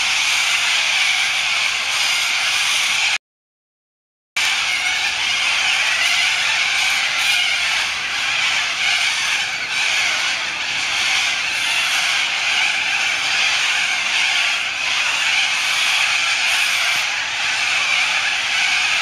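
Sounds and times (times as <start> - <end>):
cockatoos screeching: 0.0 - 3.2, 4.4 - 19.0.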